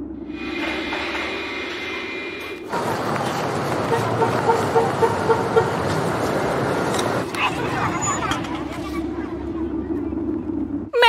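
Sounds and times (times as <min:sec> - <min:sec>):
passing traffic: 0:00.0 - 0:11.0
crowd chatter: 0:02.7 - 0:10.4.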